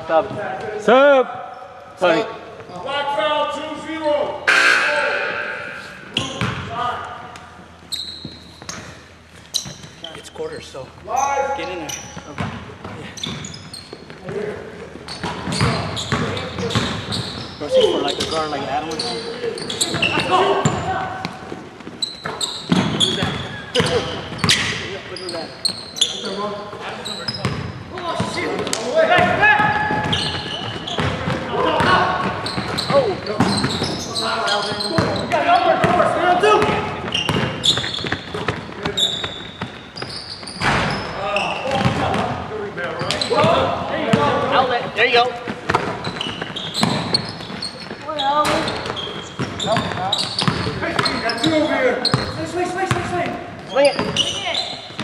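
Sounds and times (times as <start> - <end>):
players calling out: 0.0 - 54.9
sharp impacts: 4.4 - 6.6
basketball bouncing on court: 6.2 - 6.7, 12.1 - 17.6, 19.6 - 24.8, 27.3 - 34.1, 34.7 - 44.7, 45.4 - 55.0.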